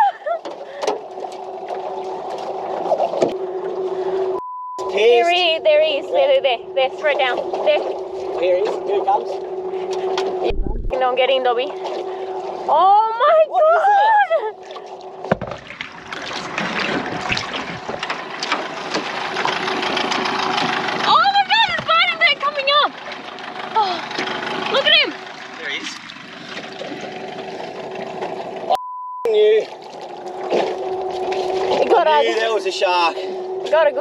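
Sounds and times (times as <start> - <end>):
steady low hum: 0.0 - 21.4, 22.0 - 34.0
water splashing against boat: 0.0 - 34.0
censor bleep: 4.4 - 5.0, 28.7 - 29.4
people shrieking and yelling: 12.9 - 14.6.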